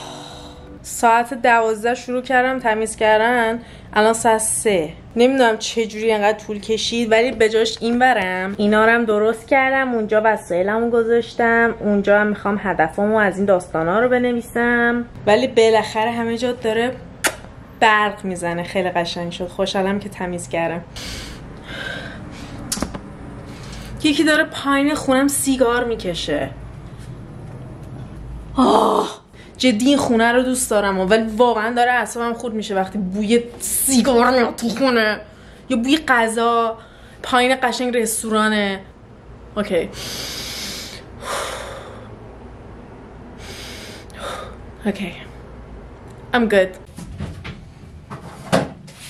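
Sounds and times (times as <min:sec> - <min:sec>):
person sharp intake of breath: 0:39.9 - 0:42.1, 0:43.4 - 0:44.6.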